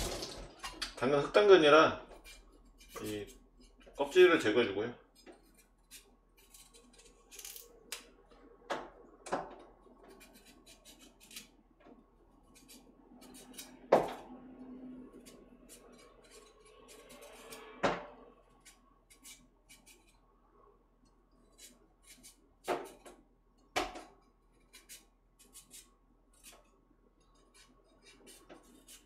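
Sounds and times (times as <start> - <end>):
carrot being peeled: 2.2 - 4.5, 5.1 - 8.2, 9.9 - 20.4, 21.3 - 23.0, 24.5 - 29.0.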